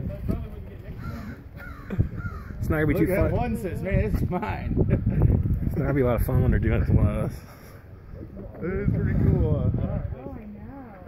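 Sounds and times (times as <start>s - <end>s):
bird calling: 0.9s - 2.6s.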